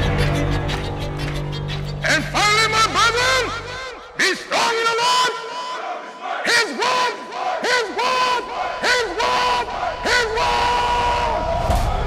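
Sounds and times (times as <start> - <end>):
crowd shouting in rhythm: 3.5 - 12.0.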